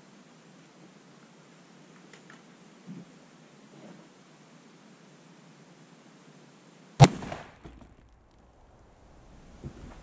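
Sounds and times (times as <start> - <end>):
rifle shot: 7.0 - 9.2.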